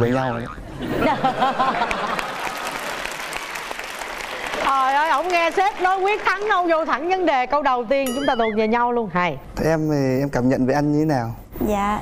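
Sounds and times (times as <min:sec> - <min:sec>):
audience applauding: 0:01.6 - 0:06.7.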